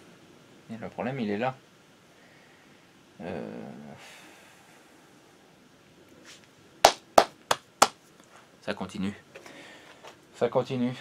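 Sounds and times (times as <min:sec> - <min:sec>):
sharp handclaps: 0:06.8 - 0:08.0.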